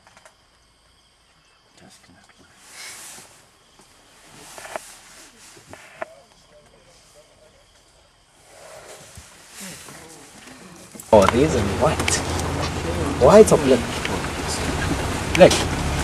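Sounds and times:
low voices murmuring: 0:05.2 - 0:16.0.

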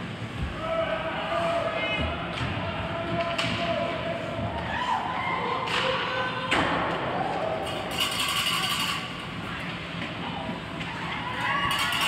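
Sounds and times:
rink background noise: 0:00.0 - 0:12.0.

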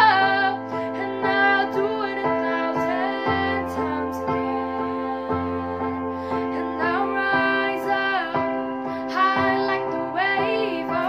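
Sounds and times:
girl singing: 0:00.0 - 0:11.0.

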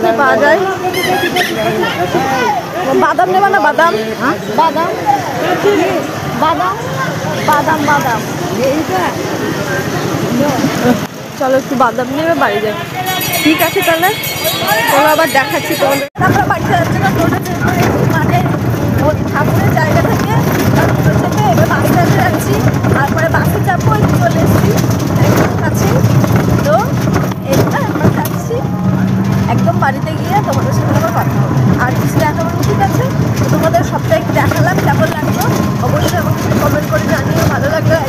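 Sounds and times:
motor rickshaw running hum: 0:00.0 - 0:38.0
road noise: 0:00.0 - 0:38.0
voices: 0:00.0 - 0:38.0.

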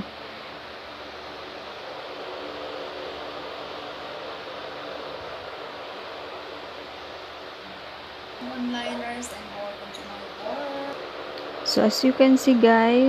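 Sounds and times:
faint low hum: 0:00.0 - 0:13.0
steady background hiss: 0:00.0 - 0:13.0.

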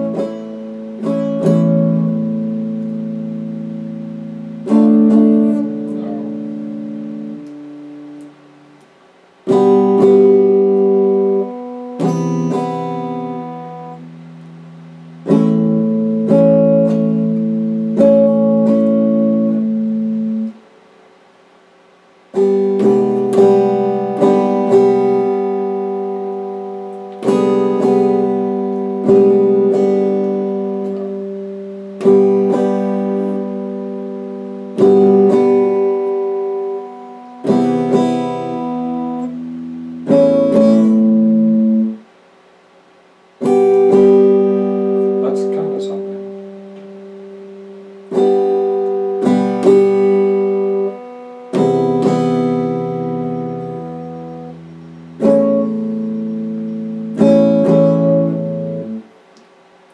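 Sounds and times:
electric guitar strumming chords: 0:00.0 - 0:59.9.

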